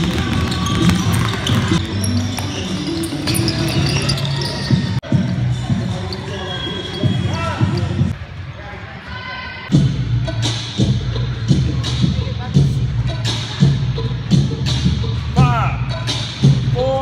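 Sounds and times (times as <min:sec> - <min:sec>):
basketballs bouncing on hardwood floor: 0:00.0 - 0:04.9
voices in large hall: 0:00.0 - 0:17.0.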